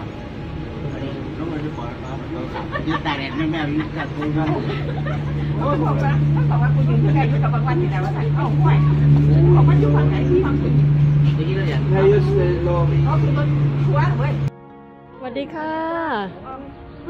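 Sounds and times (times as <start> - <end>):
steady low drone: 0.0 - 15.5
people chatting and laughing: 0.6 - 14.5.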